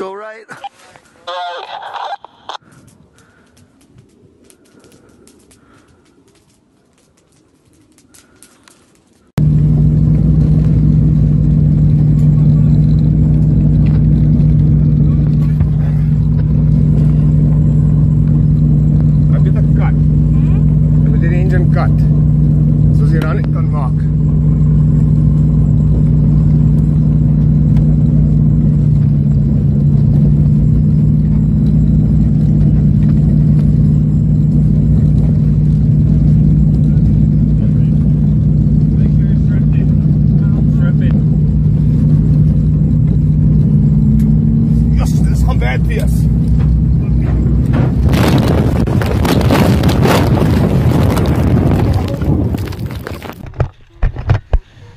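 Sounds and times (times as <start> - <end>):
voices: 0.0 - 3.4, 19.2 - 24.5, 36.8 - 41.9, 44.7 - 47.8
aircraft engines droning: 1.0 - 52.5.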